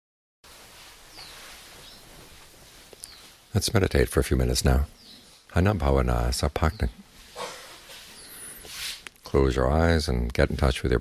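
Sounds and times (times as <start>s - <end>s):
faint background noise: 0.5s - 11.0s
bird chirps: 1.1s - 2.1s, 3.0s - 3.4s, 4.6s - 5.5s, 6.6s - 8.6s.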